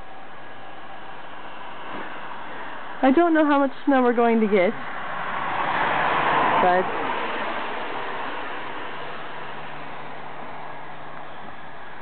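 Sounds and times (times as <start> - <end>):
rushing outdoor background noise: 0.0 - 12.0.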